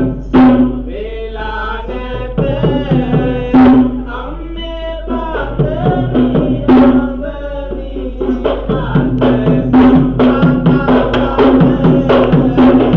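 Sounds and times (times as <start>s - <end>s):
quick drum strokes: 0.0s - 1.0s, 1.8s - 4.2s, 5.0s - 12.9s
steady held tone: 0.0s - 12.9s.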